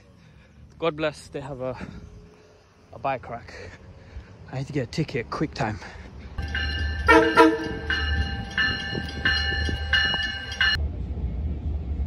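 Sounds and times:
bell ringing: 6.4 - 10.8
low rumble: 6.4 - 12.0
train horn blasts: 7.0 - 8.2.

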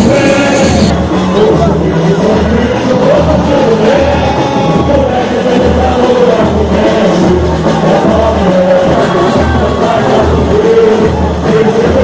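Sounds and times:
deep surdo drum beat: 0.0 - 12.0
person singing melody: 0.0 - 12.0.

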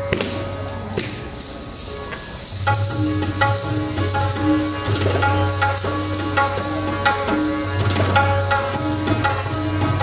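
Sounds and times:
ankle bells jingling: 0.0 - 10.0.

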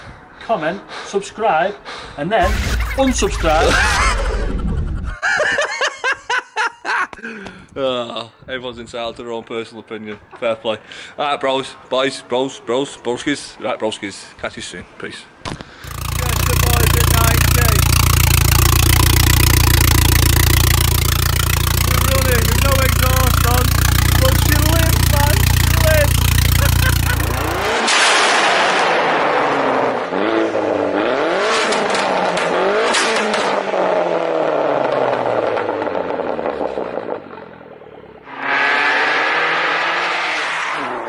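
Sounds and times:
car engine accelerating: 15.8 - 28.1
voices: 21.8 - 27.8.

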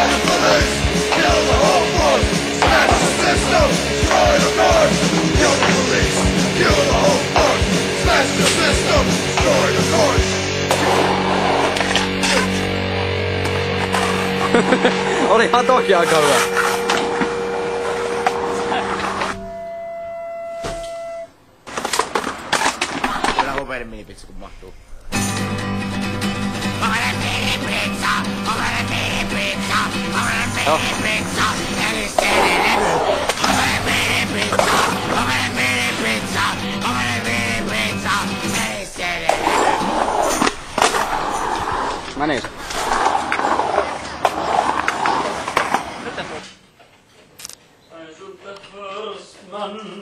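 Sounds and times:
skateboard clacks: 0.0 - 10.1
skateboard wheels rolling on concrete: 0.0 - 15.3, 15.9 - 19.4, 25.5 - 47.2
loud music: 0.0 - 19.6, 25.1 - 40.9
held musical note: 13.9 - 21.4.

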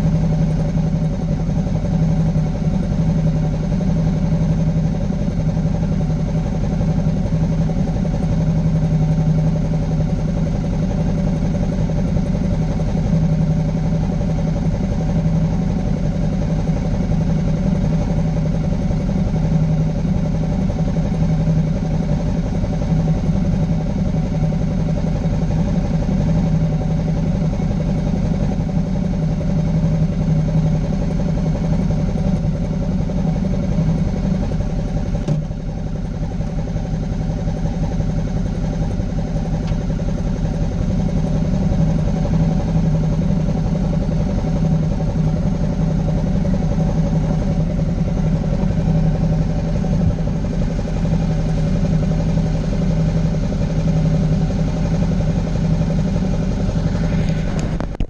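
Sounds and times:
motorcycle engine idling: 0.0 - 58.0.

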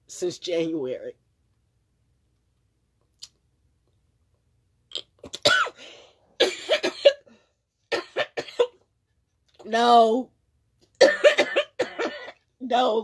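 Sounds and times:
woman coughing: 5.4 - 7.3, 7.9 - 8.8, 11.0 - 12.4.

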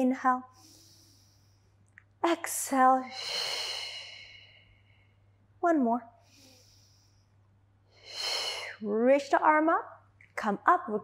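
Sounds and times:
woman exhaling: 3.0 - 4.6.

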